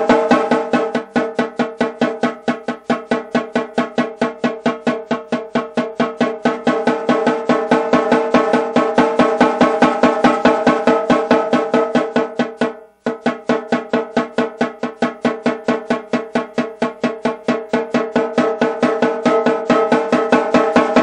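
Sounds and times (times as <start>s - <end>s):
snare drum strokes: 0.0s - 21.0s.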